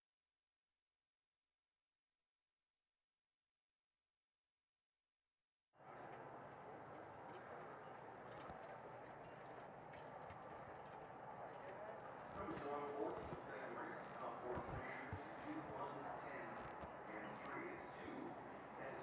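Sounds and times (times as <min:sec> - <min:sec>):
people talking: 0:05.8 - 0:19.0
hooves thudding on dirt: 0:06.1 - 0:13.5.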